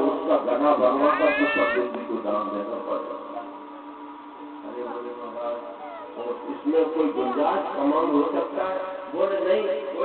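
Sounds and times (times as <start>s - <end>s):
man talking: 0.0s - 3.4s, 4.7s - 10.0s.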